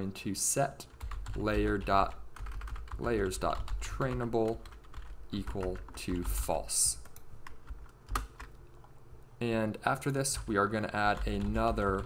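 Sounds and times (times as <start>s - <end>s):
keyboard keystrokes: 7.0s - 8.6s.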